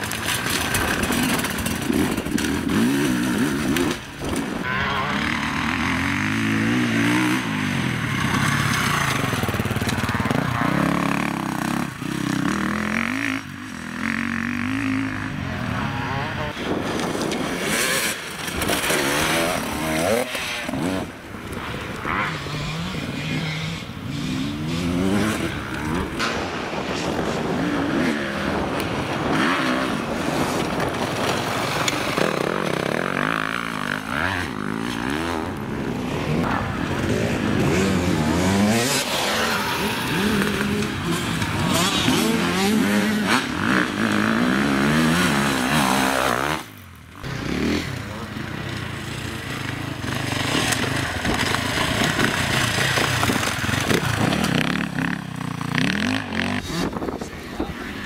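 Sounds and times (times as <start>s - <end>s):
dirt bike engines revving: 0.0s - 58.0s.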